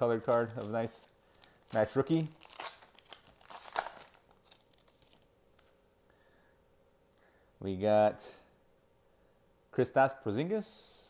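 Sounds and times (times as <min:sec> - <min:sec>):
foil wrapper crinkling and tearing: 0:00.0 - 0:05.8.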